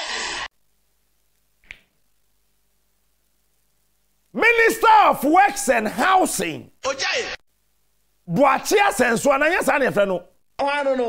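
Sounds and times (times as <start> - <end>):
man speaking loudly: 4.4 - 7.4, 8.3 - 11.0.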